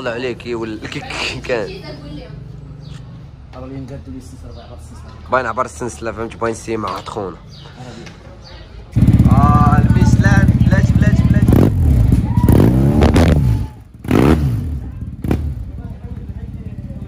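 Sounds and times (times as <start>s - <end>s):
motorcycle engine revving: 8.9s - 17.0s.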